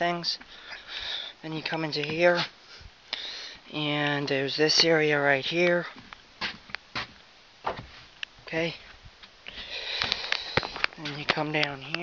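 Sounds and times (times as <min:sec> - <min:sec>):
breathing close to microphone: 0:00.5 - 0:01.4, 0:02.4 - 0:03.7, 0:09.4 - 0:11.0.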